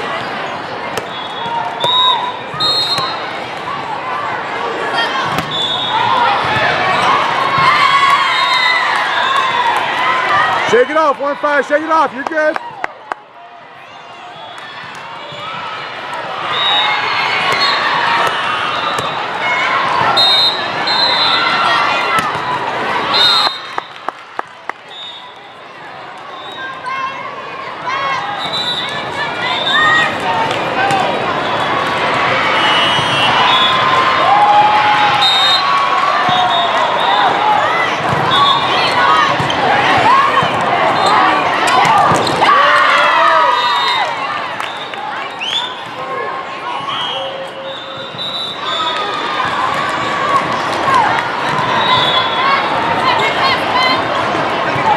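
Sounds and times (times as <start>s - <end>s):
voices calling and chattering: 0.0s - 54.9s
volleyballs hit and bouncing: 0.8s - 3.8s, 5.1s - 5.6s, 17.2s - 20.2s, 21.9s - 22.9s, 37.9s - 38.4s, 41.4s - 42.6s.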